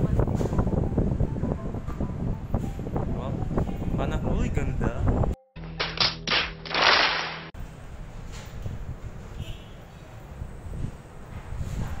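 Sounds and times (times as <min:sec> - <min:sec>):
audience applause: 0:06.7 - 0:07.4.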